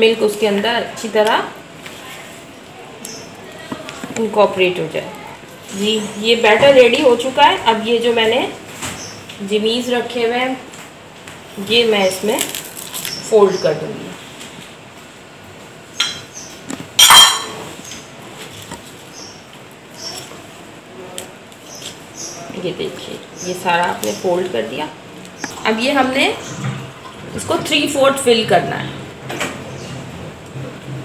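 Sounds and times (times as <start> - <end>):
ringing glass clink: 17.0 - 17.6.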